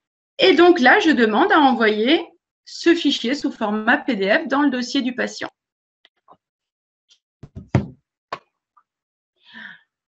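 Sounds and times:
sharp knocks: 0:07.4 - 0:08.0.

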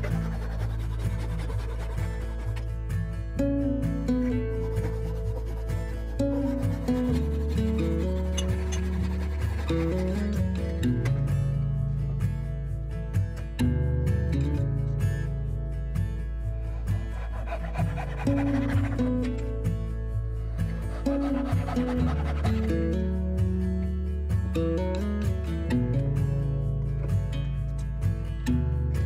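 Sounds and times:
hand saw cutting wood: 0:00.0 - 0:02.8, 0:04.2 - 0:10.7, 0:16.7 - 0:19.6, 0:20.6 - 0:23.0
background music: 0:00.0 - 0:29.0.

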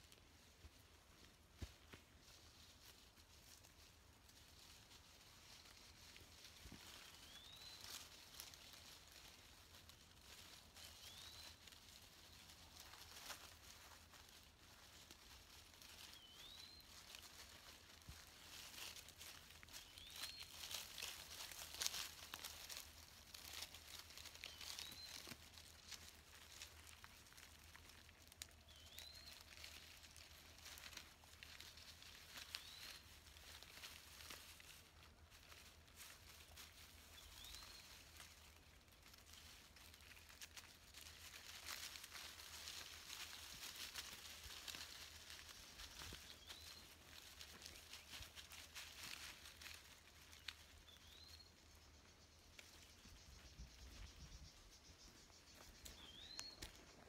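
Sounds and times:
dry leaves rustling and crackling: 0:00.0 - 0:57.0.

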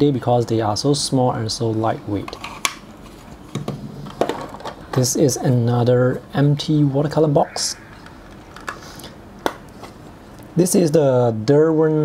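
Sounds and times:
low hiss: 0:00.0 - 0:03.1, 0:03.8 - 0:12.0.

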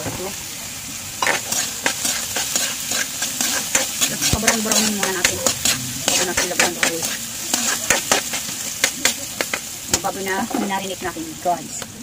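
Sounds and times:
onion sizzling in hot oil: 0:00.0 - 0:12.0
metal spatula scraping and tapping pan: 0:01.2 - 0:10.8.

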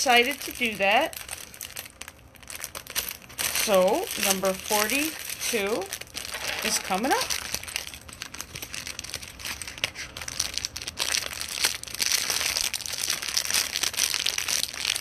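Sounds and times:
plastic bag crinkling: 0:00.0 - 0:15.0.

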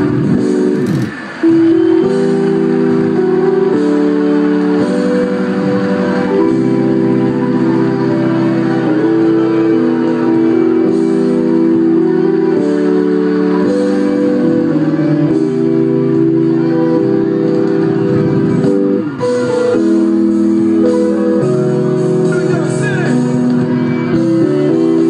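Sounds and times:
electronic keyboard chords: 0:00.0 - 0:25.0.

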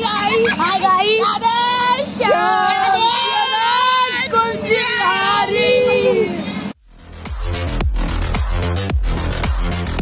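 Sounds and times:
boys shouting and chanting: 0:00.0 - 0:06.6.

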